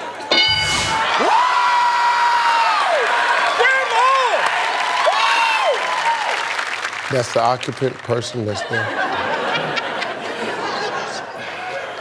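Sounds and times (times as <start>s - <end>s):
audience cheering: 0.0s - 12.0s.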